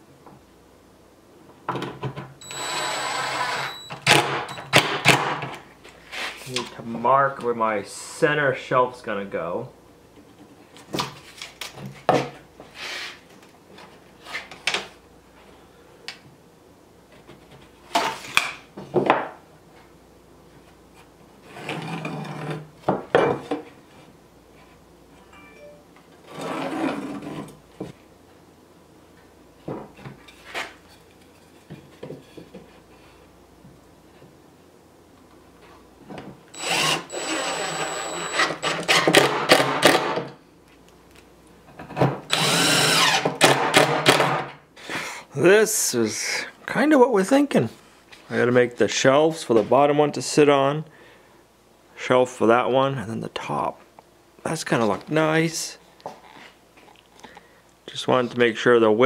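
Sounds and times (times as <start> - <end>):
cordless drill motor whining: 2.4 - 3.9, 36.5 - 38.9, 42.3 - 43.2.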